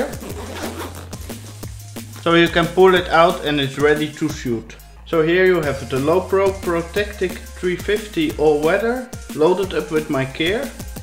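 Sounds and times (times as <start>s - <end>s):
zipper being drawn open: 0.0s - 2.2s
electronic music with bass: 0.0s - 11.0s.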